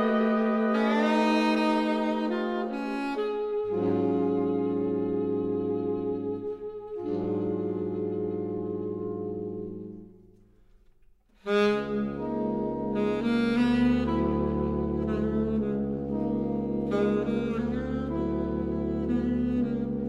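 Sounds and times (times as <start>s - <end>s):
saxophone ensemble chords: 0.0s - 10.7s, 11.3s - 20.0s.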